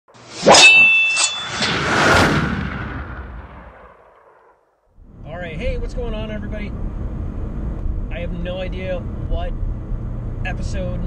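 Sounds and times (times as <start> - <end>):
loud metallic clang ringing: 0.4 - 2.3.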